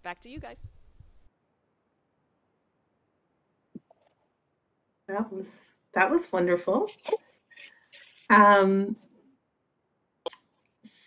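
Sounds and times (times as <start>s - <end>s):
person speaking: 0.0s - 0.8s.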